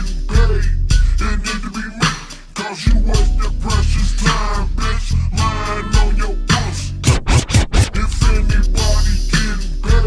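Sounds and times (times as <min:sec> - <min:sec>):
slowed hip hop beat and vocals: 0:00.0 - 0:10.0.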